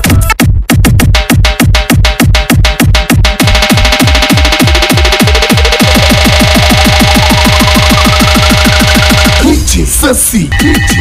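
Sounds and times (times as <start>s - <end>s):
falling bass drops: 0.9s - 9.5s.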